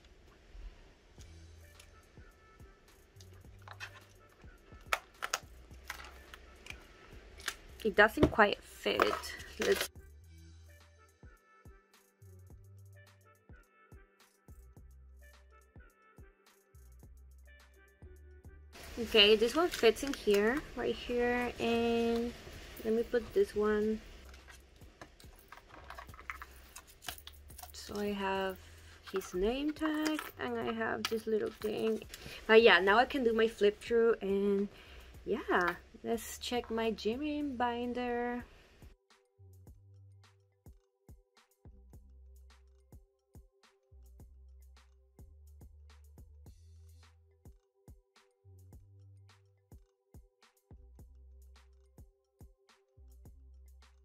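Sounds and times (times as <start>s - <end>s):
plastic sleeves rustling: 3.2s - 9.9s, 18.8s - 33.6s.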